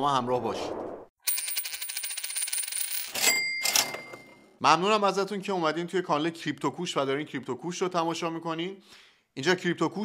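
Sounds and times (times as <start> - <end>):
cash register ring: 1.9 - 4.5.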